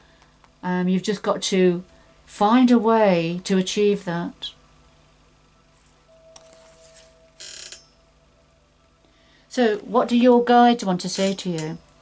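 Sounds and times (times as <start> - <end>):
cards being handled: 5.8 - 7.1.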